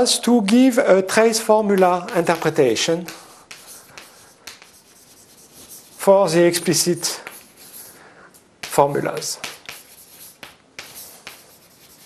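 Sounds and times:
chalk scratching on blackboard: 0:01.6 - 0:12.0.

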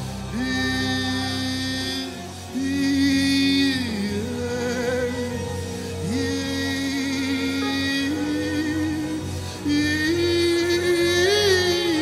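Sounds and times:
gospel band accompaniment: 0:00.0 - 0:12.0.

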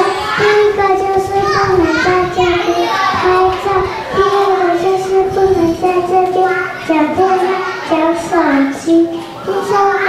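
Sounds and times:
children singing: 0:00.0 - 0:10.0.

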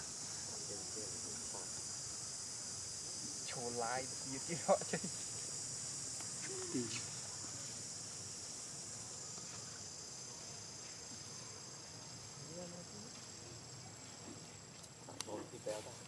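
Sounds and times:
insect chorus drone: 0:00.0 - 0:16.0.

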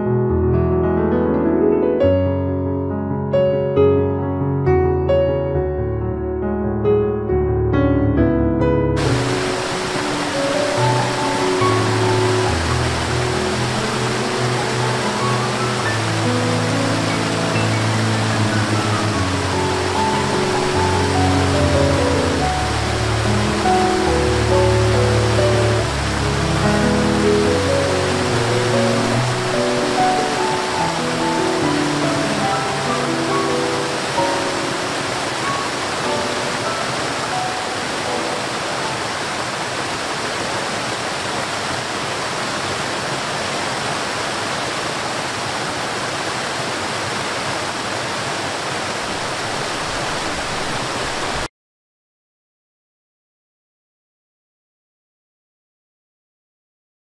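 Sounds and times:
slow music of long held notes: 0:03.4 - 0:39.4
waterfall rushing water: 0:09.0 - 0:51.5.

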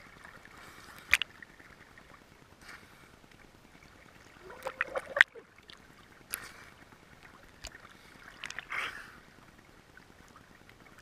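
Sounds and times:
sea water splashing and gurgling: 0:00.0 - 0:11.0.

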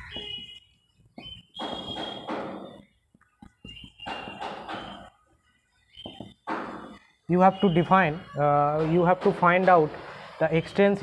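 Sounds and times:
marker squeak: 0:00.0 - 0:08.8.

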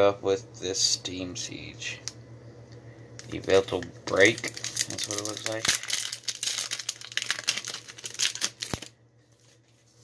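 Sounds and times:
foil wrapper crinkling and tearing: 0:03.2 - 0:10.0.

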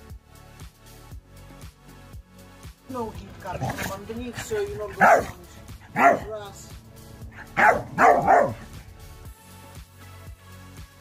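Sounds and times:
dog barking: 0:03.5 - 0:06.7, 0:07.3 - 0:08.8.

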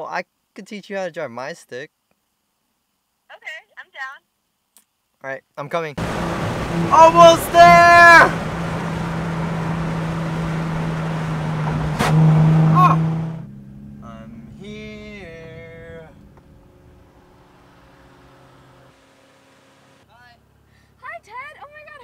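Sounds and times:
car engine droning: 0:06.0 - 0:20.7
road and wind noise: 0:06.0 - 0:21.1.

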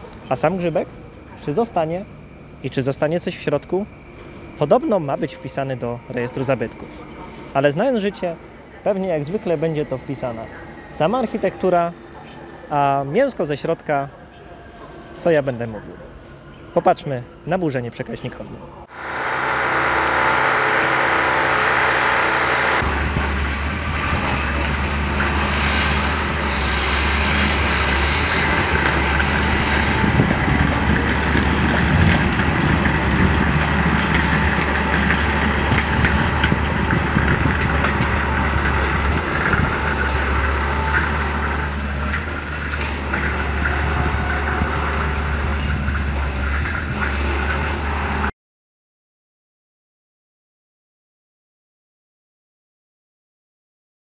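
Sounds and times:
excavator diesel engine: 0:18.8 - 0:48.3.

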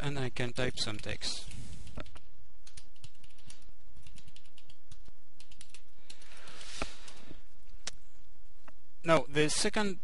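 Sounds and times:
typing on computer keyboard: 0:00.7 - 0:07.2.

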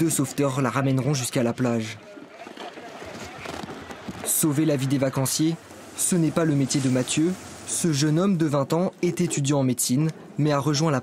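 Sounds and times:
rough sea water: 0:00.0 - 0:11.0.

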